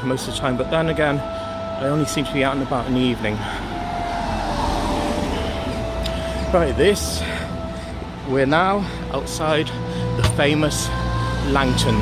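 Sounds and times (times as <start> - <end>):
car passing: 2.4 - 9.1.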